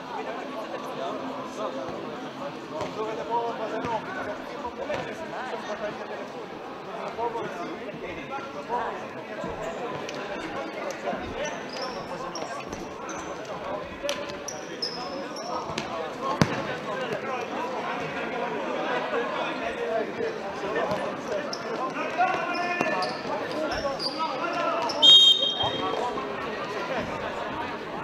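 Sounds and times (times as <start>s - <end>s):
spectator chatter: 0.0s - 28.0s
shoe squeaks: 11.5s - 13.4s, 14.4s - 15.7s, 21.4s - 21.8s, 22.4s - 26.0s
shrill whistle blast: 25.0s - 25.9s.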